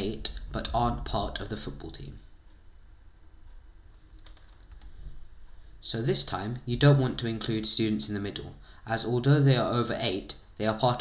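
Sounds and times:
faint low hum: 0.0 - 11.0
computer keyboard clicks: 4.2 - 4.9.

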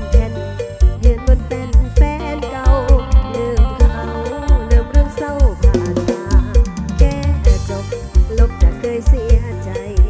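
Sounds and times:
live band music: 0.0 - 10.0
woman singing: 0.0 - 10.0.

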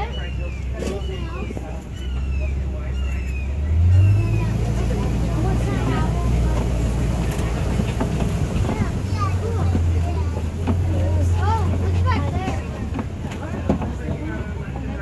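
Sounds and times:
passengers talking: 0.0 - 15.0
truck engine droning: 0.0 - 15.0.

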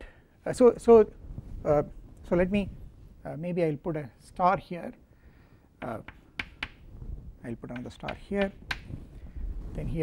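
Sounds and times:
chalk tapping on a blackboard: 5.8 - 6.9, 7.7 - 9.0.

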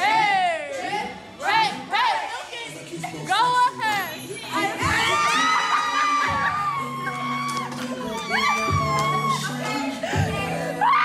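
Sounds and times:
people screaming and cheering: 4.6 - 11.0.

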